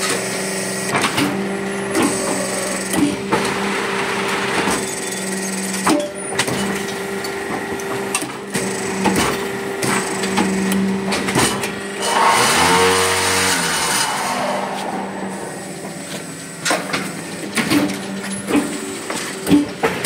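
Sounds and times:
brick making machine humming: 0:00.0 - 0:20.0
pulsing buzz: 0:11.8 - 0:18.4.

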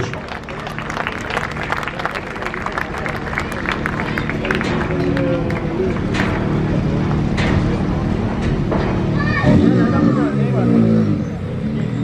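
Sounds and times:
crowd clapping: 0:00.0 - 0:06.7
car engine running: 0:00.0 - 0:12.0.

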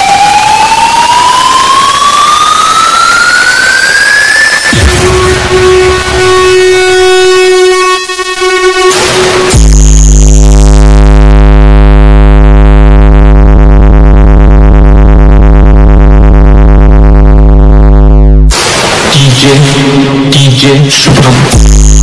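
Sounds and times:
electronic dance track: 0:00.0 - 0:22.0
deep synthesizer bass note: 0:04.6 - 0:22.0.

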